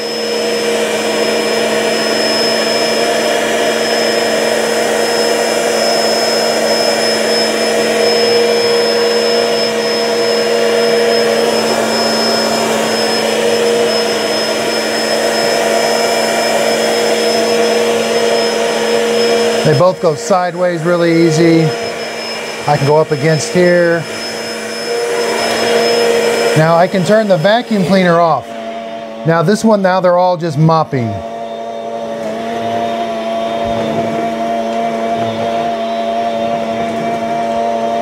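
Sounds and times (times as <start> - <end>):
spin mop motor hum: 0.0 - 38.0.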